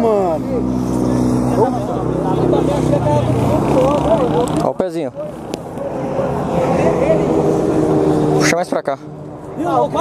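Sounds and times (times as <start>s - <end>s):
people talking: 0.0s - 7.3s
vehicle engine running: 0.0s - 10.0s.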